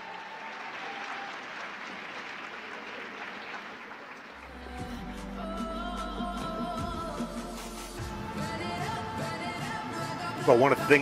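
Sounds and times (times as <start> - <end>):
audience applauding: 0.0 - 4.9
music with deep bass: 4.5 - 11.0.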